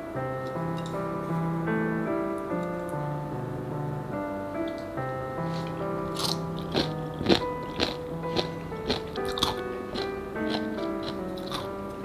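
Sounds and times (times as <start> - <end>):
soft background music: 0.0 - 12.0
crunching and chewing cabbage: 6.1 - 11.8.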